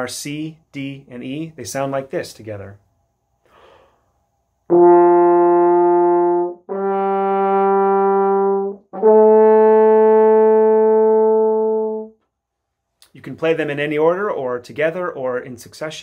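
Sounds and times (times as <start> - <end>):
french horn long notes: 4.7 - 12.2.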